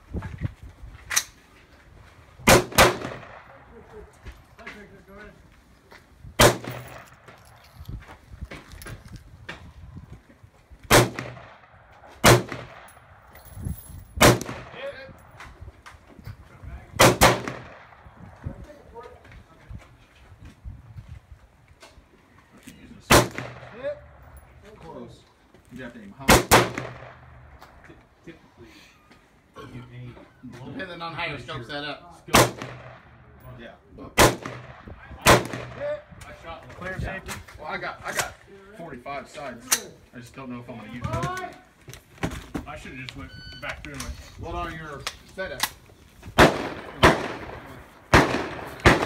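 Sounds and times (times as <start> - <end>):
gunshots with echoing tail: 2.4 - 3.7, 6.4 - 7.3, 10.9 - 13.3, 14.2 - 14.8, 17.0 - 18.4, 23.1 - 24.4, 26.3 - 27.5, 32.3 - 33.3, 34.2 - 36.1, 46.4 - 49.0
handgun shot with echo: 46.4 - 49.0.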